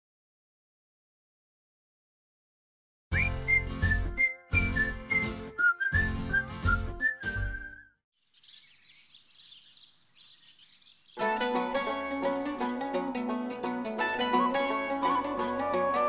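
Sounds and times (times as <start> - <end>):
theme music with whistle-like melody: 3.1 - 8.0, 14.2 - 16.0
faint bird chirping: 8.2 - 11.2.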